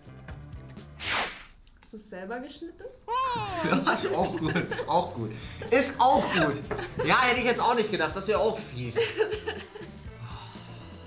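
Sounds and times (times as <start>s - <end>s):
quiet background music: 0.0s - 11.0s
sharp downward whoosh: 1.0s - 1.5s.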